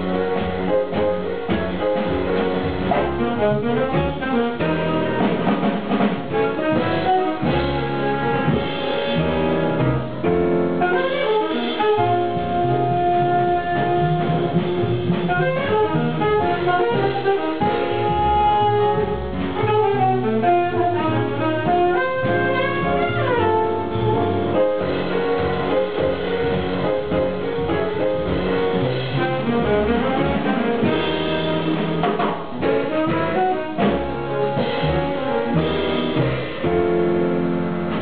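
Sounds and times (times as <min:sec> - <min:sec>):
jazz quartet playing: 0:00.0 - 0:38.0
saxophone: 0:02.9 - 0:05.5, 0:06.3 - 0:09.9, 0:10.8 - 0:26.2, 0:26.8 - 0:36.8.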